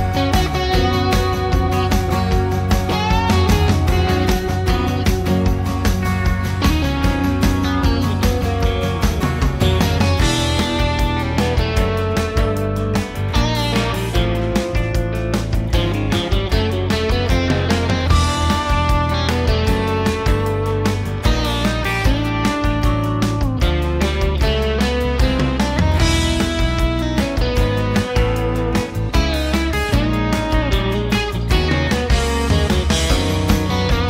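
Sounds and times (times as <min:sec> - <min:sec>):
bass: 0:00.0 - 0:34.0
drums: 0:00.0 - 0:34.0
electric guitar: 0:00.0 - 0:34.0.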